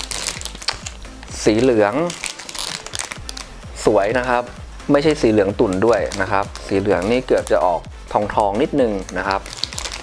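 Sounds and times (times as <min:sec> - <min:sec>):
plastic bag crinkling: 0:00.0 - 0:03.5, 0:05.6 - 0:07.6, 0:09.0 - 0:10.0.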